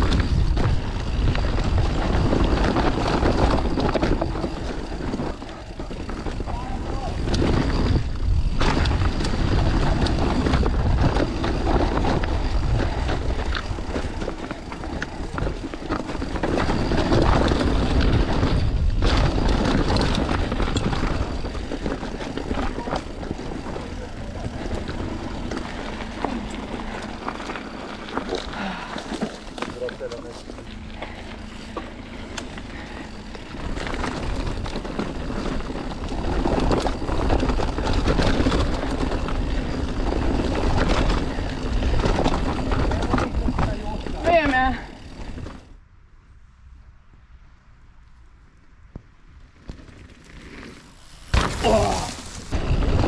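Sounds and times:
tyres rumbling over dirt and stones: 0:00.0 - 0:45.7, 0:49.5 - 0:53.0
bike rattling over bumps: 0:00.0 - 0:45.8, 0:48.9 - 0:53.0.

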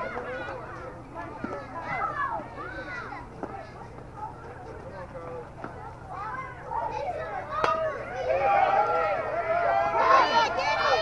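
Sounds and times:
children and spectators shouting: 0:00.0 - 0:04.4, 0:05.9 - 0:11.0.

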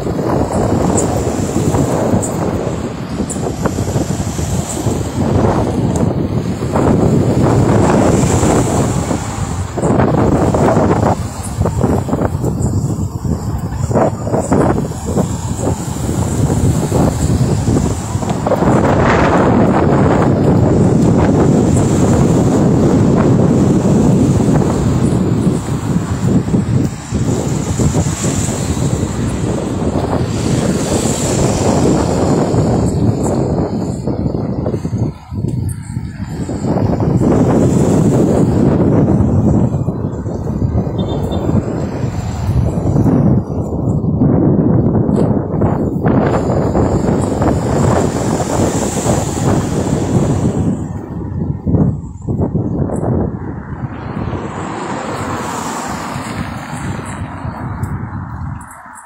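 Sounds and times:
road traffic passing: 0:00.0 - 0:59.0
wind buffeting microphone: 0:00.0 - 0:59.0.

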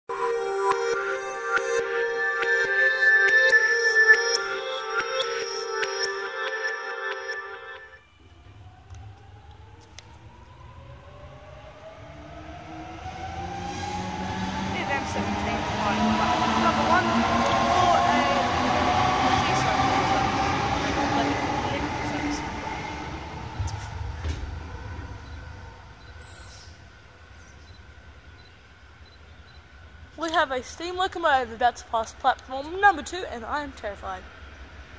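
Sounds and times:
electric train motor whine: 0:08.0 - 0:30.1
rail rumble: 0:08.1 - 0:34.9.

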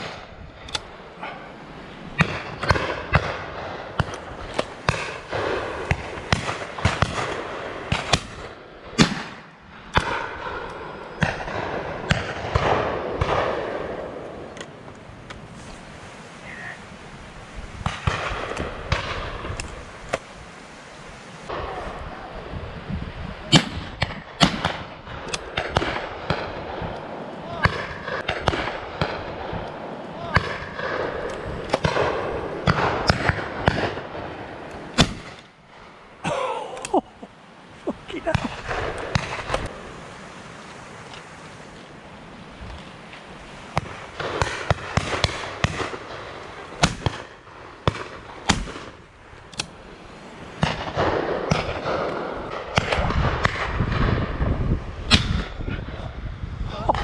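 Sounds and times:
shotguns firing: 0:02.2 - 0:14.6, 0:17.8 - 0:20.2, 0:23.5 - 0:35.9, 0:38.3 - 0:39.8, 0:43.8 - 0:49.8, 0:50.5 - 0:54.4.

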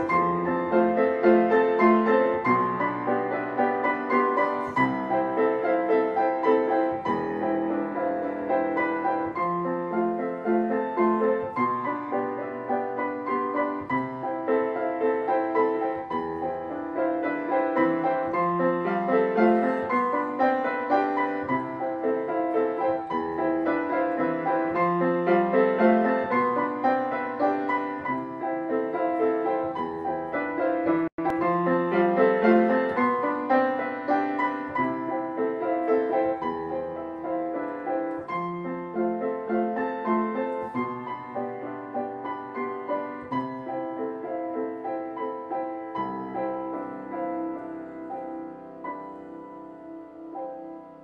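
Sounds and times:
solo grand piano: 0:00.0 - 0:51.0.

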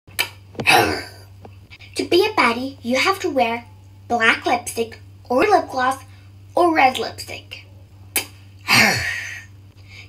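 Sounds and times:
person sneezing: 0:08.6 - 0:09.5.

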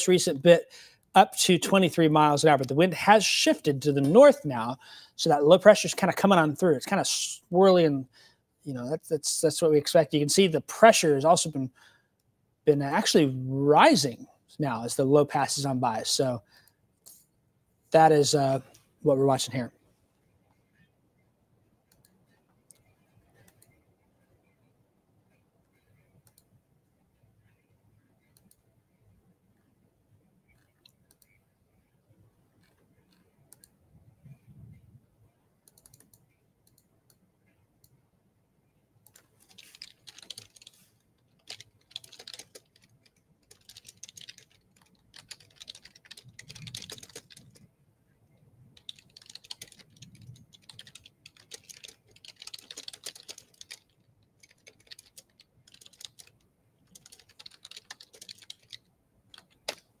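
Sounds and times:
faint computer keyboard typing: 0:21.8 - 0:23.9, 0:25.3 - 0:26.6, 0:28.2 - 0:28.7, 0:30.5 - 0:31.5, 0:32.6 - 0:33.8, 0:35.6 - 0:38.0, 0:39.0 - 0:47.7, 0:48.8 - 1:00.0.

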